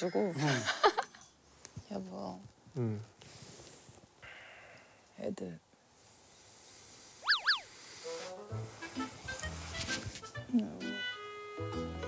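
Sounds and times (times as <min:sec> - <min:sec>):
cartoon pitch sweeps: 0:07.2 - 0:07.8
rising whoosh: 0:07.2 - 0:07.9.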